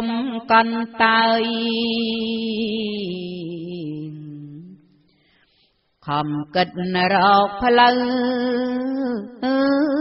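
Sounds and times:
woman chanting a slow melody: 0:00.0 - 0:04.8, 0:06.0 - 0:10.0.

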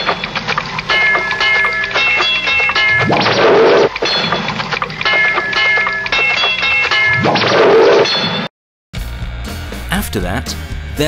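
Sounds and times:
tape loop collage: 0:00.0 - 0:08.0
bell-like ringing tones: 0:00.0 - 0:08.5.

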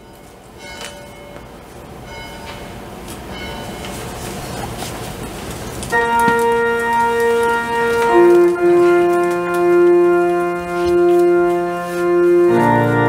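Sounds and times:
sustained organ chord: 0:06.0 - 0:13.0.

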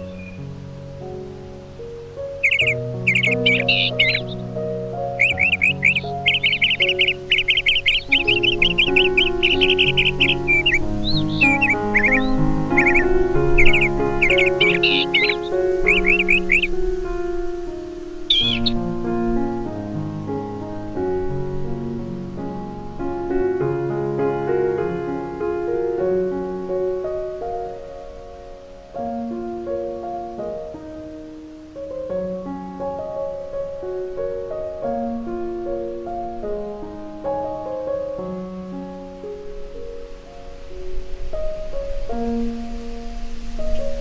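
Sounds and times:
birds chirping and trilling: 0:00.0 - 0:19.7
soft piano music: 0:00.0 - 0:44.0.

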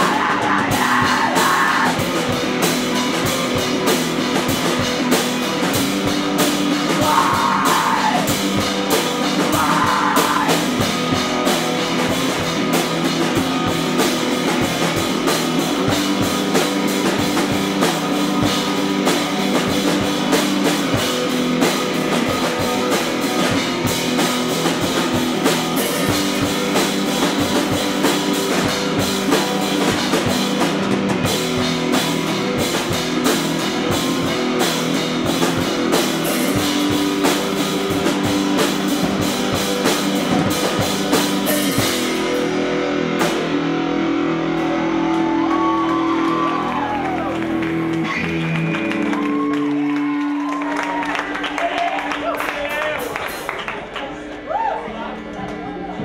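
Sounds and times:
drums and cymbal hits: 0:00.0 - 0:49.4
loud electric guitar: 0:00.0 - 0:56.0.

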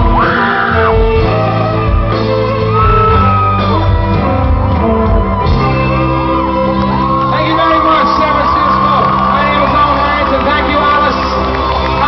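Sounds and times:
audience whooping and shouting: 0:00.0 - 0:12.0
electric guitar: 0:00.0 - 0:12.0
live band music: 0:00.0 - 0:12.0
violin: 0:00.0 - 0:12.0.

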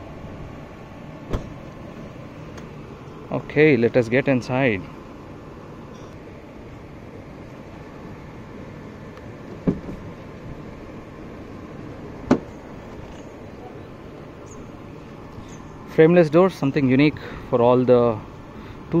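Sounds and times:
car door handle and latch click: 0:01.3 - 0:01.6.

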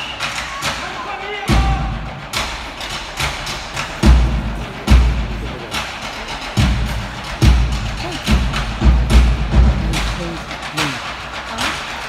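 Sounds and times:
live ensemble music: 0:00.0 - 0:12.0.

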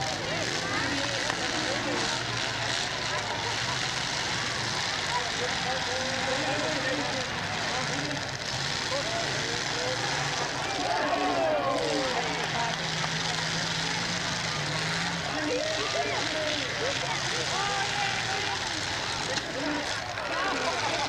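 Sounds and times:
car engines revving: 0:00.0 - 0:21.0
crowd calling out: 0:00.0 - 0:21.0.

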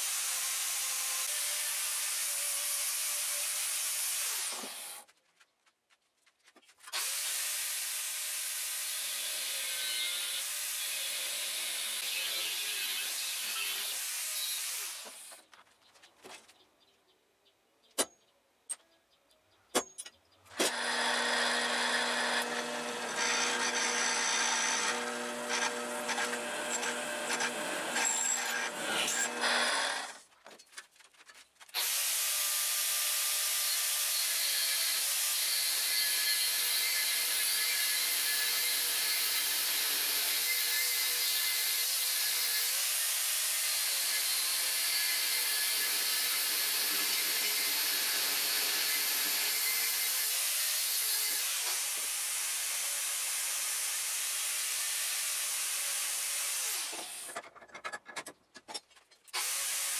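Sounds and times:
electric drill boring steel: 0:00.0 - 0:05.0, 0:07.0 - 0:15.3, 0:20.6 - 0:30.2, 0:31.8 - 0:57.4, 0:59.4 - 0:59.9
angle grinder cutting steel: 0:06.9 - 0:15.4, 0:20.6 - 0:30.2, 0:31.8 - 0:57.4.

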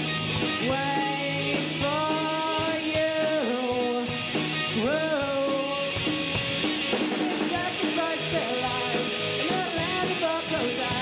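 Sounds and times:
drums: 0:00.0 - 0:11.0
electric bass guitar: 0:00.0 - 0:11.0
lead guitar with bent notes: 0:00.0 - 0:11.0.

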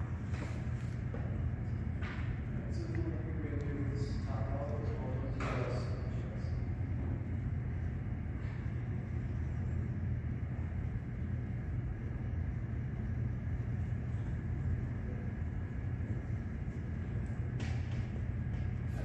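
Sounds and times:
low rumble and hum: 0:00.0 - 0:19.0.

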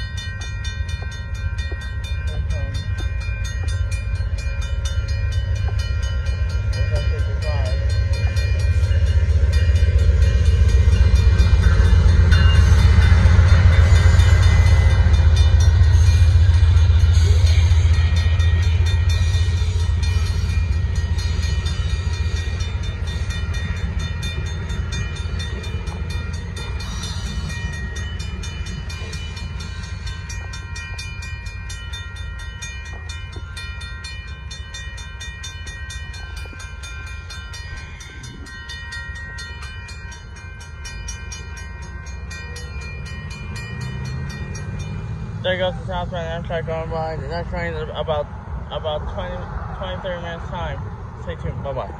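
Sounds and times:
railroad crossing bell ringing: 0:00.0 - 0:51.9
train rumbling past: 0:00.0 - 0:51.9.

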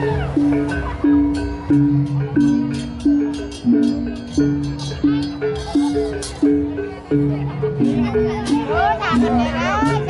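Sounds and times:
clashing hand cymbals: 0:00.0 - 0:07.2
barrel drums: 0:00.0 - 0:10.0.

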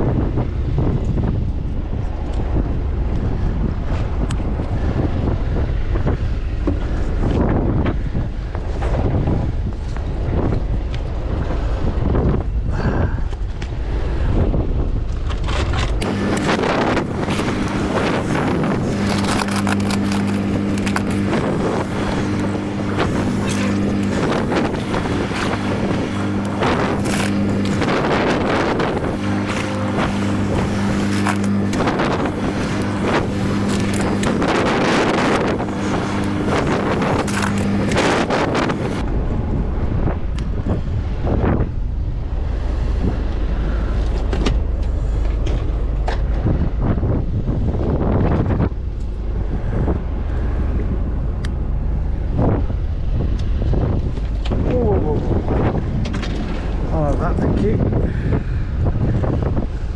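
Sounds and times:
boat engine running: 0:00.0 - 0:59.9
wind buffeting microphone: 0:00.0 - 0:59.9.

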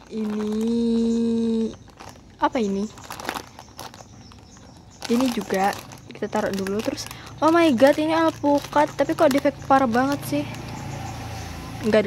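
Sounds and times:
plastic packaging crinkling: 0:00.0 - 0:10.8.

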